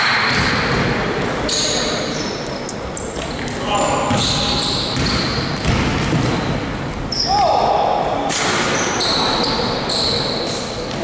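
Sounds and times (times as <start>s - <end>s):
players' voices: 0.6s - 5.4s
sneaker squeak: 1.4s - 7.6s, 8.3s - 11.0s
basketball dribbling: 4.1s - 6.5s.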